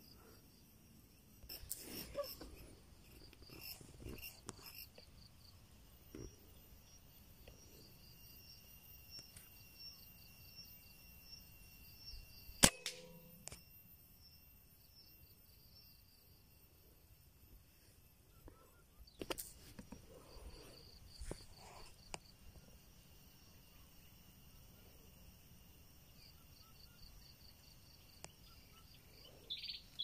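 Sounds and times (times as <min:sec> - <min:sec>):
insects chirring: 0:00.0 - 0:30.0
air rifle shot: 0:12.6 - 0:13.3.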